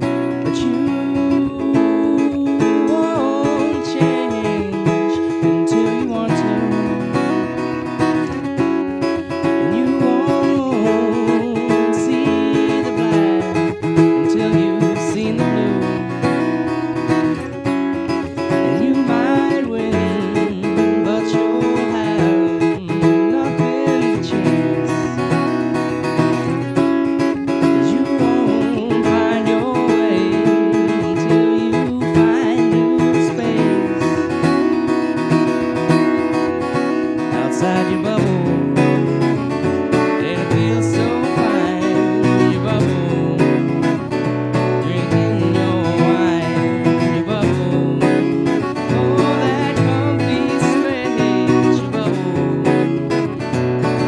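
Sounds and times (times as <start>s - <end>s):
acoustic guitar strumming: 0.0s - 54.0s
man singing: 0.0s - 54.0s.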